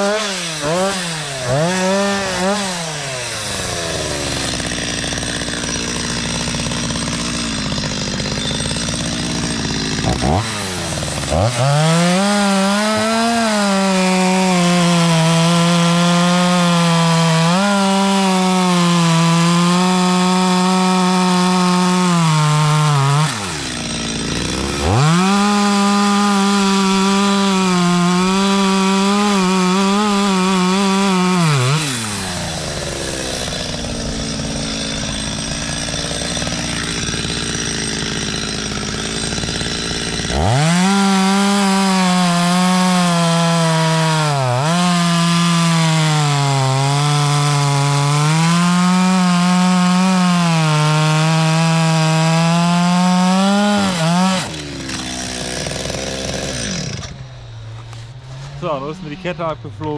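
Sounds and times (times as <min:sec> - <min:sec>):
chainsaw cutting wood: 0:00.0 - 0:59.9.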